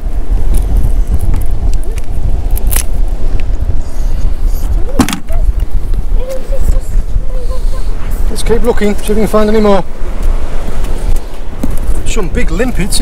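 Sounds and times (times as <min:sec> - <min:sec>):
wind buffeting microphone: 0:00.0 - 0:13.0.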